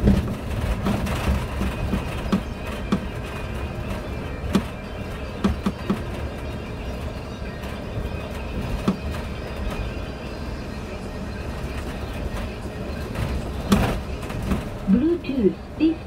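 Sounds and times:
knocks and rattles: 0.0s - 9.9s, 11.8s - 15.0s
bus engine and road rumble: 0.0s - 16.0s.

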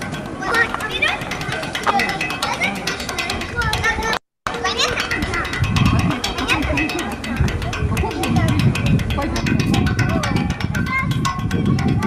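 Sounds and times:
children calling and chattering: 0.0s - 12.0s
music: 0.0s - 12.0s.

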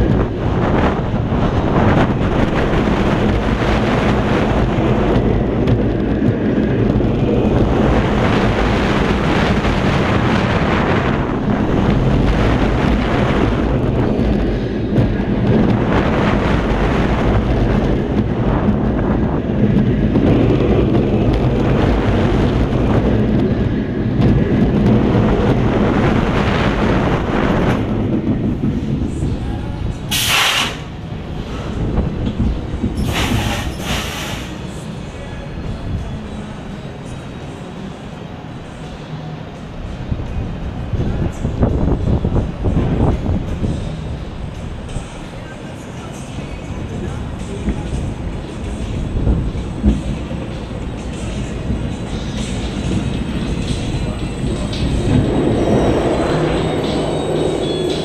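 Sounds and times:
roller coaster rumbling on track: 0.0s - 58.0s
wind rushing over microphone: 0.0s - 58.0s
sharp brake hisses: 30.1s - 30.9s, 33.1s - 34.6s.

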